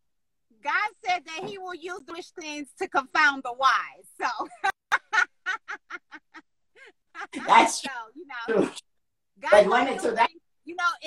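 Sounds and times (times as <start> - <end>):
woman laughing: 4.2 - 7.7.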